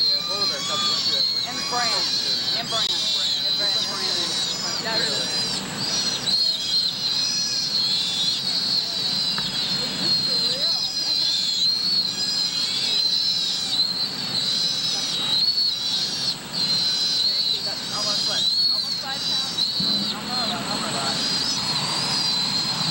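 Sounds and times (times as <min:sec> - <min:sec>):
faint voices: 0:00.0 - 0:22.9
sea otter pup squealing: 0:00.0 - 0:22.9.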